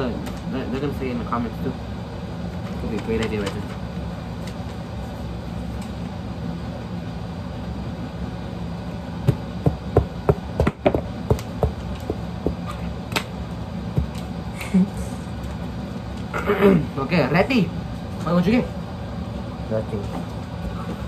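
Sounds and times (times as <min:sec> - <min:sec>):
low background hum: 0:00.0 - 0:21.0
taps and knocks on wooden table: 0:09.3 - 0:12.7.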